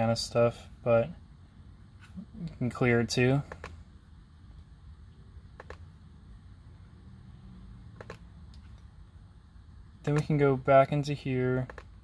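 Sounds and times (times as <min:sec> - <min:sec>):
low steady hum: 0:00.0 - 0:12.0
computer mouse clicks: 0:03.5 - 0:03.8, 0:05.6 - 0:05.9, 0:08.0 - 0:08.9, 0:11.6 - 0:11.9.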